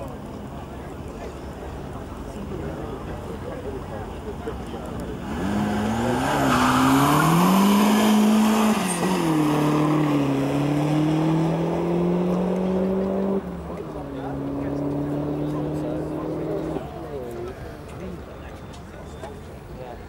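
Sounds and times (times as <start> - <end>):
car engine revving: 5.1 - 17.3.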